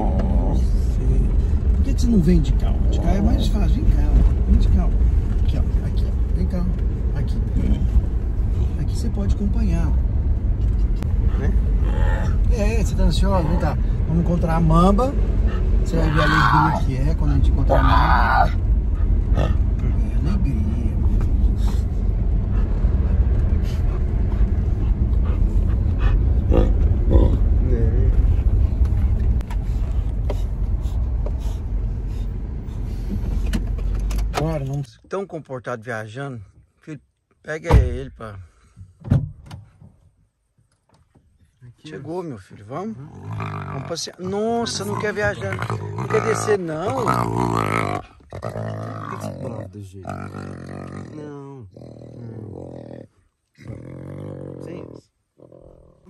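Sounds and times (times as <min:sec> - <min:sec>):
big cat cub growling moan: 0:00.0 - 0:01.1, 0:02.7 - 0:03.7, 0:11.4 - 0:13.9, 0:15.9 - 0:16.9, 0:17.5 - 0:18.6, 0:26.4 - 0:27.7, 0:43.0 - 0:56.0
road rumble inside car: 0:00.0 - 0:34.9.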